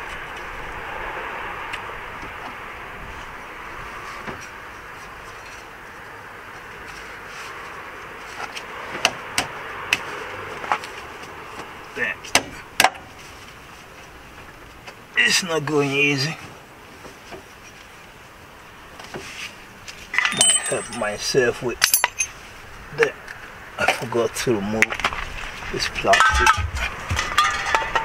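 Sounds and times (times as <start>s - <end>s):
metal knocks and clinks: 20.2s - 22.4s, 26.1s - 28.0s.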